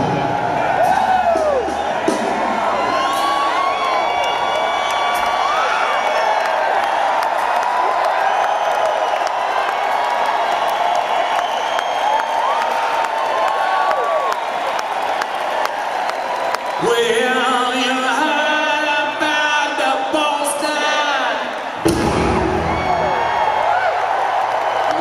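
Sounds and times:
crowd cheering and whooping: 0:00.0 - 0:19.0, 0:20.6 - 0:25.0
scattered clapping: 0:03.6 - 0:17.3.

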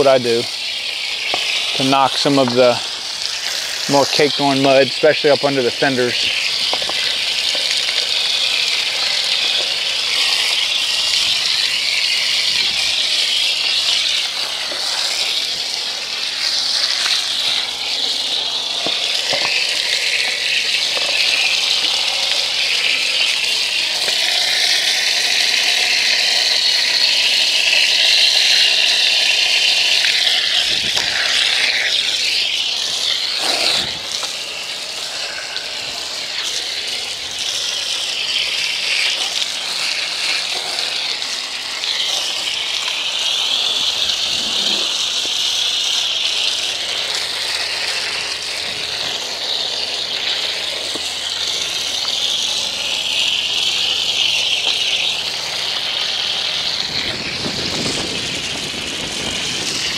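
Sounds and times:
hose water spraying: 0:00.0 - 0:59.9.

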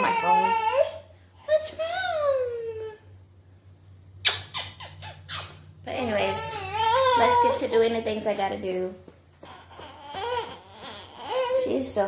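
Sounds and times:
baby fussing: 0:09.4 - 0:11.8.

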